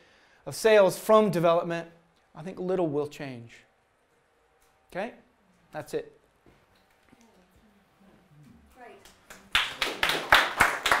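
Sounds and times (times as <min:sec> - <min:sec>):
audience clapping: 0:09.0 - 0:11.0.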